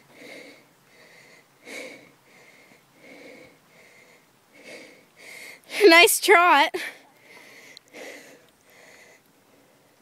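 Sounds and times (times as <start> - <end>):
person breathing faintly: 0.0 - 5.8, 6.8 - 10.0.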